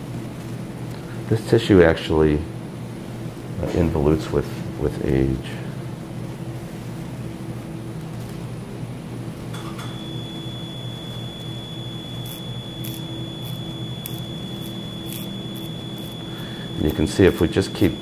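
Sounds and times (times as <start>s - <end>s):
low steady hum: 0.0s - 18.0s
high-pitched electronic tone: 9.9s - 18.0s.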